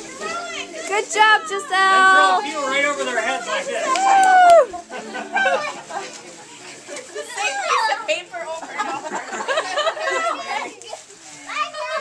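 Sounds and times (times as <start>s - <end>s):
children calling and squealing: 0.0s - 8.2s, 9.8s - 12.0s.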